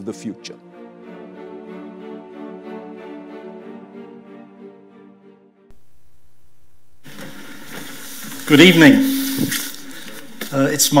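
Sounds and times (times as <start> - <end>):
steady low hum: 5.7 - 10.4
hiss and faint rustle: 7.0 - 11.0.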